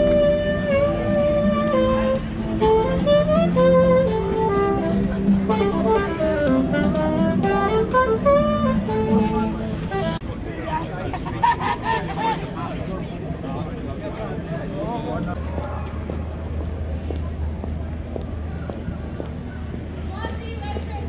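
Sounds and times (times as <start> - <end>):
saxophone melody: 0.0 - 10.2
crowd chatter: 0.0 - 21.0.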